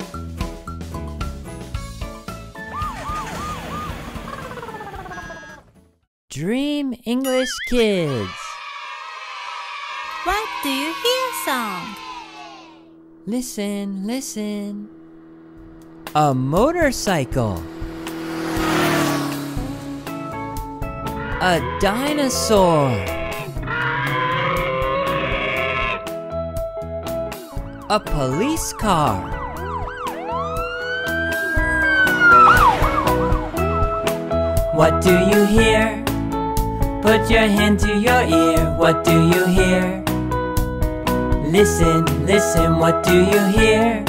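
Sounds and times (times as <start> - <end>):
falling slide effect: 2.6 - 5.5, 30.2 - 34.1
siren-like wails: 2.6 - 5.6, 27.4 - 34.1
backing guitar music: 14.8 - 24.2, 24.8 - 44.0.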